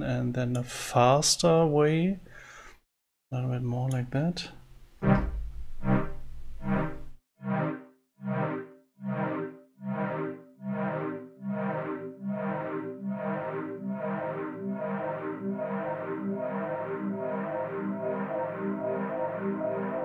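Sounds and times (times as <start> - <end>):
synth chord with delay echoes: 5.0 - 20.0.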